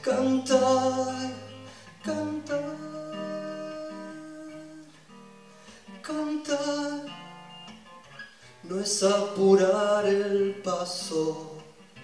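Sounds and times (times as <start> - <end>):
soft acoustic guitar picking: 0.0 - 12.0.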